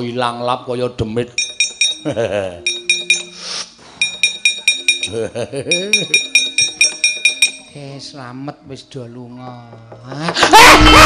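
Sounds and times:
metal plates struck rapidly: 1.4 - 2.1, 4.0 - 7.7.

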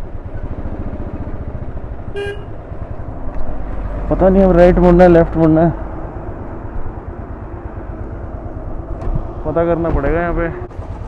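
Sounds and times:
motorcycle engine running: 0.0 - 11.0
vehicle horn toot: 2.1 - 2.6.

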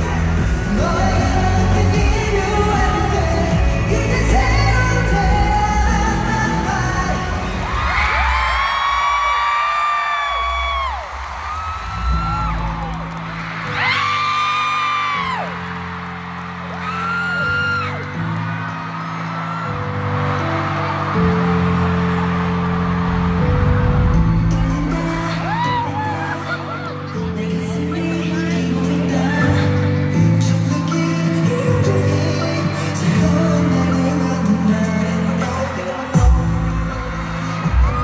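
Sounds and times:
pop music with heavy bass: 0.0 - 9.4, 21.2 - 38.0
crowd screaming: 5.0 - 30.2, 34.8 - 38.0.

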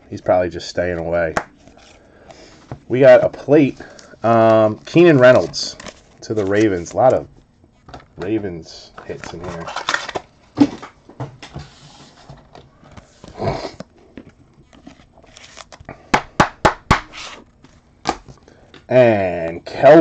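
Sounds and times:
man talking: 0.0 - 1.4, 2.9 - 7.3, 8.2 - 9.8, 18.9 - 20.0
paper cards rustling: 3.2 - 10.9, 14.2 - 16.0.

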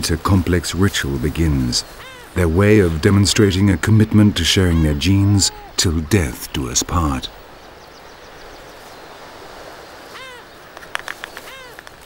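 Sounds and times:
surf: 0.0 - 12.0
wind: 0.0 - 12.0.

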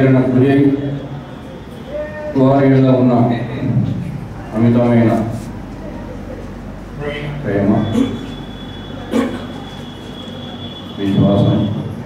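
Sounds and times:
faint high whine: 0.0 - 2.6, 6.7 - 12.0
man speaking into microphone: 7.0 - 8.2, 11.0 - 11.9.

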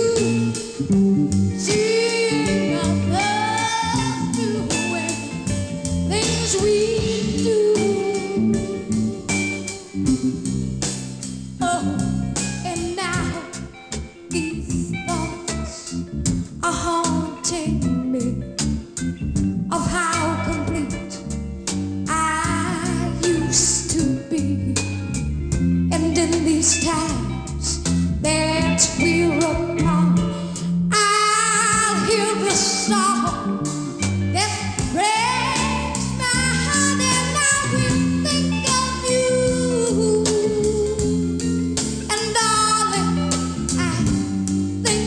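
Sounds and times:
woman singing rock: 0.0 - 10.4, 11.6 - 16.0, 16.6 - 18.6, 19.7 - 21.3, 22.1 - 25.2, 25.9 - 45.0
bass notes: 0.0 - 45.0
guitar: 0.0 - 45.0.

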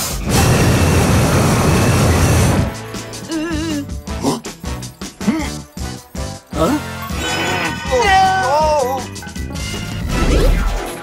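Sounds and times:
cartoon music: 3.0 - 11.0.

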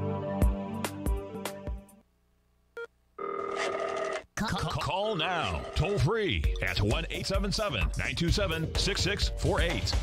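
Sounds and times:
telephone ringing: 3.2 - 4.3, 5.1 - 6.1.

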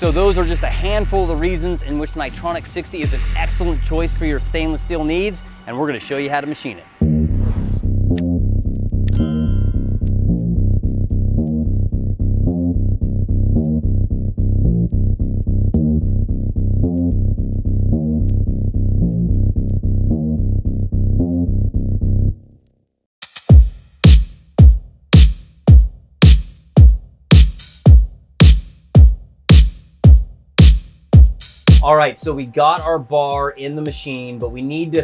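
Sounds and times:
bass-heavy beat music: 0.0 - 5.7, 7.0 - 22.4, 23.2 - 35.0.

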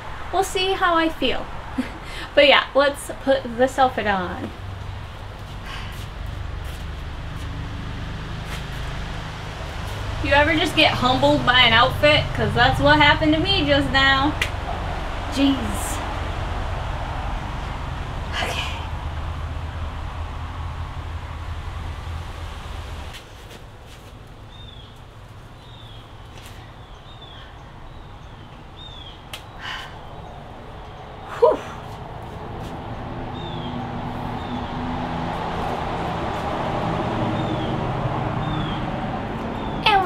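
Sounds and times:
low rumbling noise: 0.0 - 40.0
engine hum: 1.3 - 40.0
bird chirping: 25.6 - 31.4.

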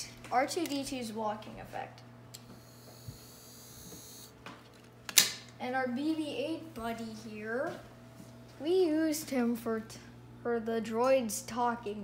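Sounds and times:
high-pitched electronic whine: 2.6 - 4.3.

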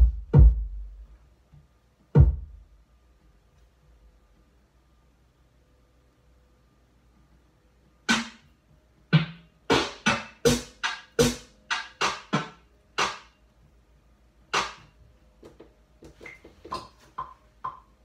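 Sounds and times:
electronic drum hits: 0.0 - 0.8.

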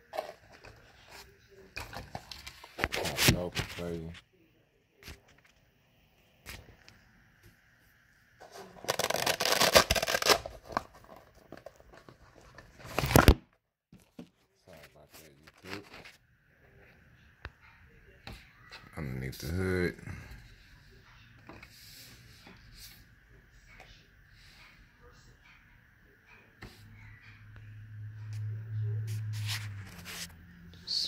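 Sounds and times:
plastic shell rustling and scraping: 0.0 - 4.2, 8.4 - 13.4.

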